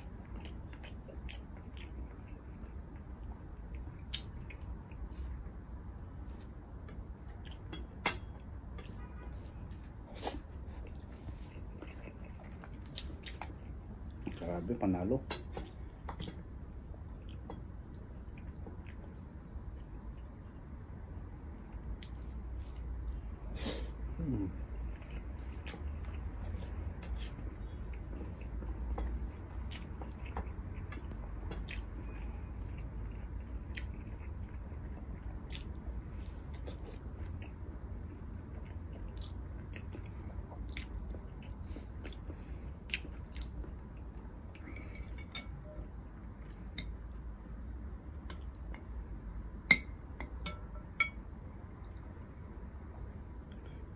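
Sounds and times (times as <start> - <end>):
man chewing food: 0.0 - 14.7, 15.3 - 49.3
low steady hum: 0.0 - 53.9.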